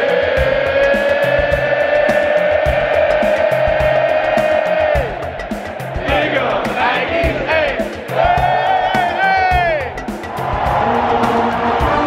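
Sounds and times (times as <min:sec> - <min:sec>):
crowd and band holding a note: 0:00.0 - 0:12.0
steady drumbeat: 0:00.0 - 0:12.0.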